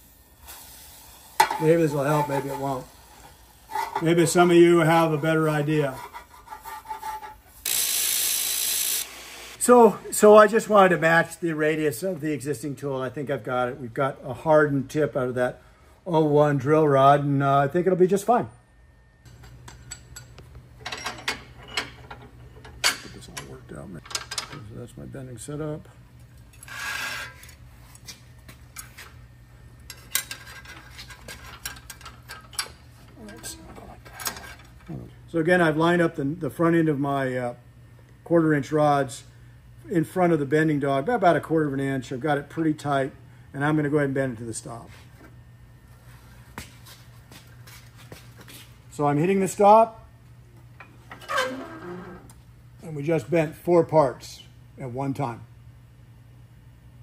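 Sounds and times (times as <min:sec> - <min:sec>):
metal scrape: 0:01.5 - 0:04.4, 0:05.5 - 0:07.6, 0:26.5 - 0:27.6.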